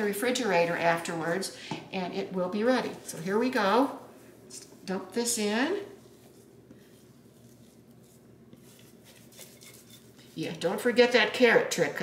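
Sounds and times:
spatula scraping glass bowl: 0:06.1 - 0:10.8.

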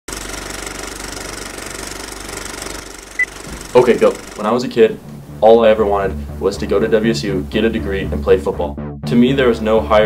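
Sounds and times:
film projector clattering: 0:00.1 - 0:04.8.

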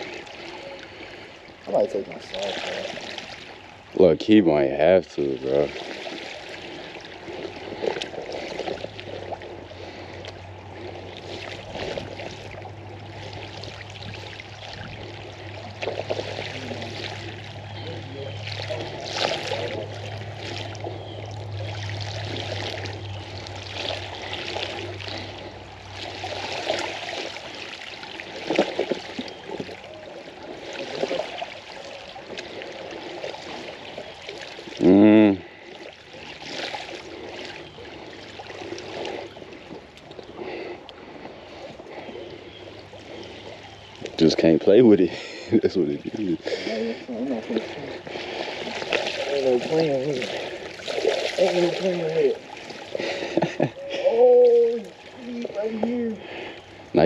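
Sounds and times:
bicycle tyres splashing through water: 0:00.0 - 0:57.0
running water: 0:00.0 - 0:57.0.

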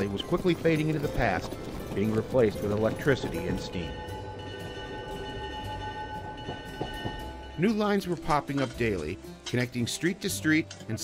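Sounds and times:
train rumbling on rails: 0:00.0 - 0:07.5
rail clacks: 0:00.0 - 0:09.6
background music: 0:00.0 - 0:11.0.

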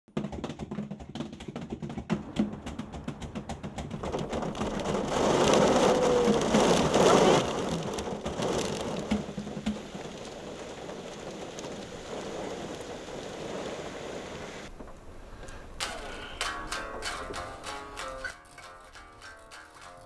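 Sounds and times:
rain falling: 0:04.0 - 0:18.4.

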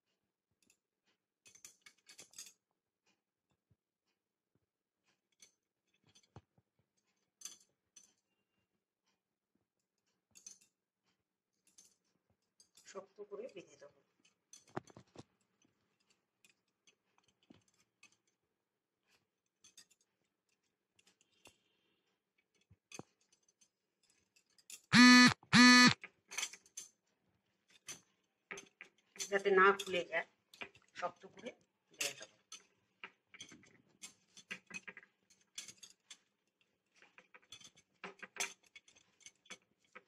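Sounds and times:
faint clicks and cloth rustles: 0:00.1 - 0:24.8
buzzy horn honks: 0:24.9 - 0:26.0.

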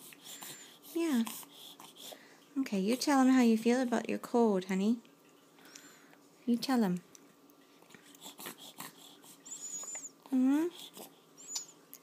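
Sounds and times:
baby snuffly breathing: 0:00.0 - 0:02.3, 0:08.0 - 0:10.0, 0:10.7 - 0:11.3.

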